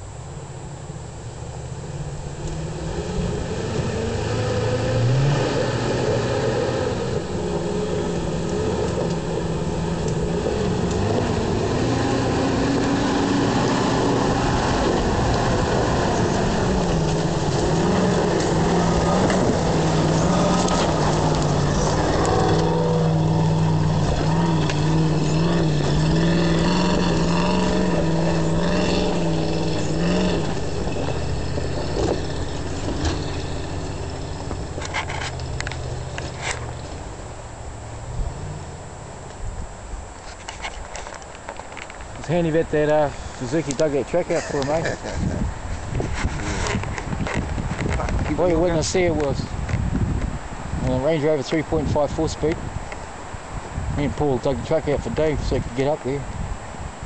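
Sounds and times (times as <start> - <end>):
engine revving under load: 1.7 - 39.0, 42.2 - 52.8
tyres churning mud: 2.7 - 37.0, 42.2 - 49.4.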